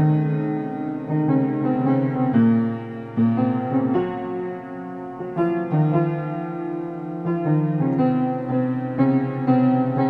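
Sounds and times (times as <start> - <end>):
solo piano chords: 0.0 - 10.0.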